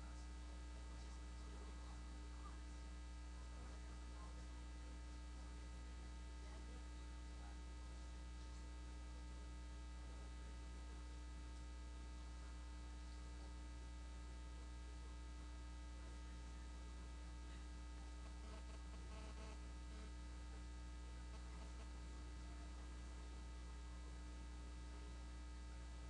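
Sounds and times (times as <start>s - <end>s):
faint electrical mains hum: 0.0s - 26.0s.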